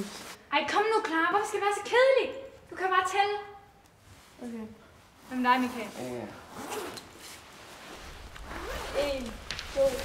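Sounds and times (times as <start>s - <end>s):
rustling: 4.0s - 10.0s.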